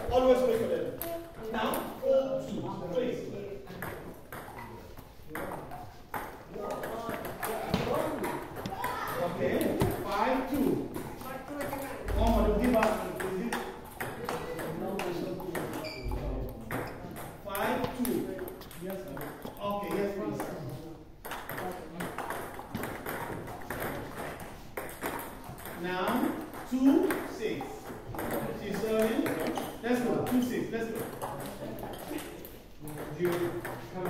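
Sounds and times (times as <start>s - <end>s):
table tennis balls clicking: 3.7s - 20.6s, 21.2s - 34.0s.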